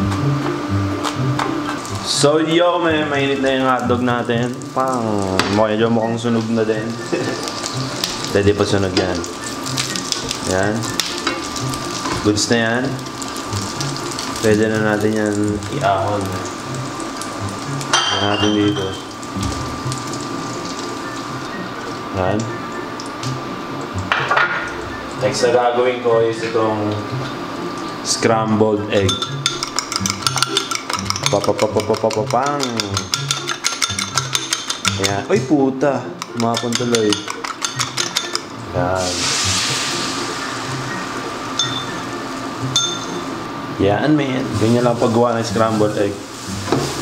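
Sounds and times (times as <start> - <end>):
oil sizzling in frying pan: 0.0 - 47.0
fork clicking against ceramic bowl: 29.2 - 35.2, 36.2 - 38.5.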